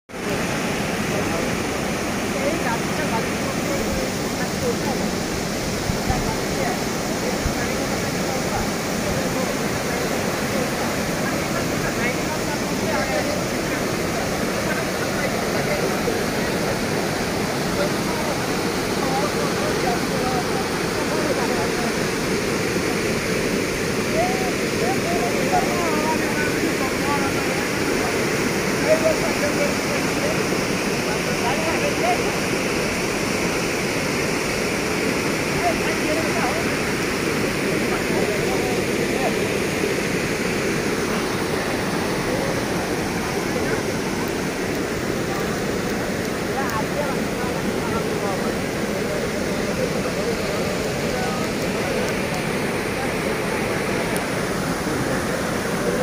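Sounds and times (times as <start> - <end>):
floodwater rushing: 0.1 - 56.0.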